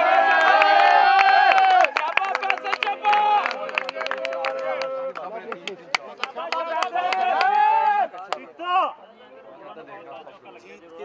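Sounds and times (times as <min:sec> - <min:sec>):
men calling out and talking: 0:02.0 - 0:11.0.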